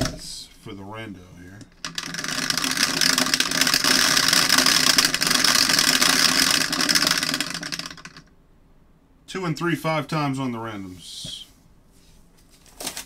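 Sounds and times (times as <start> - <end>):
dice roller motor whirring: 1.6 - 8.3
dice rattling against plastic: 1.7 - 8.2.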